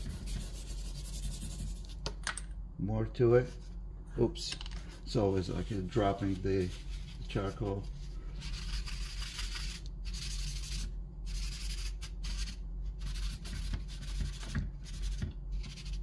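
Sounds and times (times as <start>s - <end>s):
faint low hum: 0.0s - 16.0s
paper towel scrubbing on paper: 5.2s - 16.0s.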